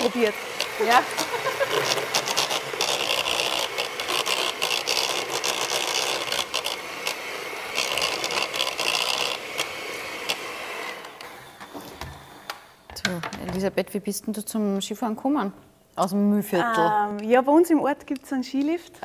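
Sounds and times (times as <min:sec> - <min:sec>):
electric hand mixer running: 0:00.0 - 0:12.7.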